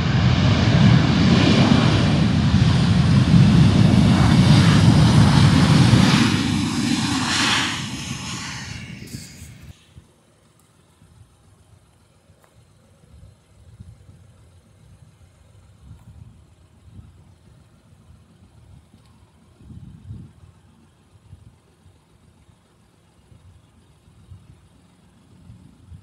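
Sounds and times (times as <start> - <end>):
wind buffeting microphone: 0.0 - 9.8, 14.9 - 20.6.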